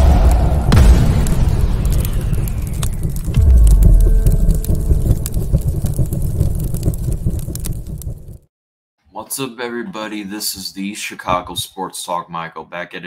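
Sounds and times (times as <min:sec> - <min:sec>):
explosion boom with rumbling tail: 0:00.0 - 0:08.5.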